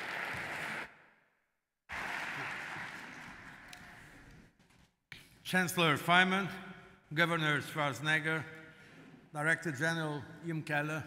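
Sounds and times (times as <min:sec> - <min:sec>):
audience applauding: 0:00.0 - 0:01.0, 0:01.9 - 0:04.4.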